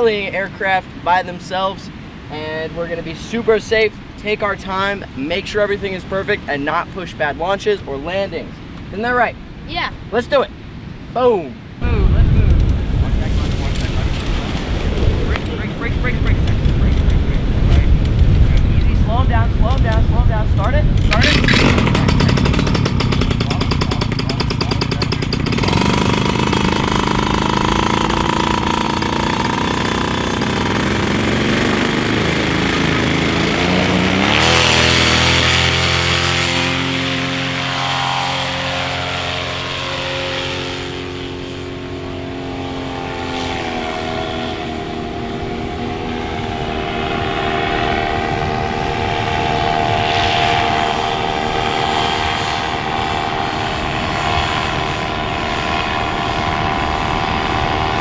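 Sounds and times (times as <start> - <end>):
paramotor engine and propeller revving: 11.8 - 58.0.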